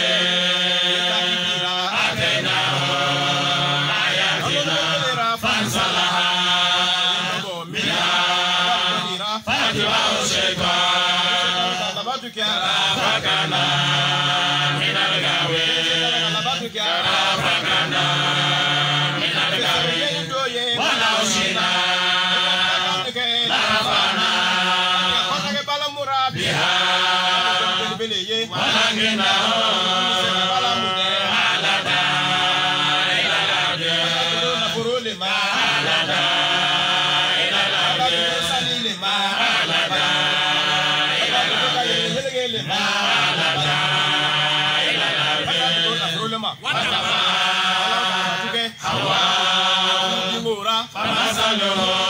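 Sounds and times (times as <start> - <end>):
men chanting through microphones: 0.0 - 52.0.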